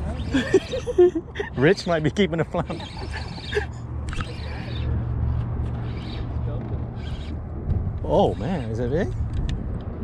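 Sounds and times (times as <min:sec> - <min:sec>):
steady low rumble: 0:03.6 - 0:10.0.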